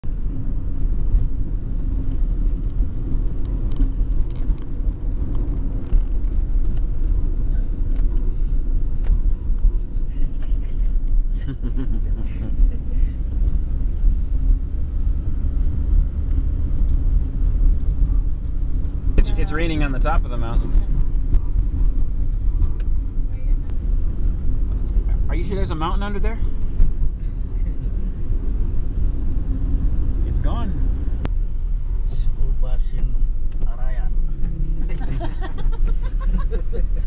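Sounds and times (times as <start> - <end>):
car engine and tyres rumble: 0.0 - 37.0.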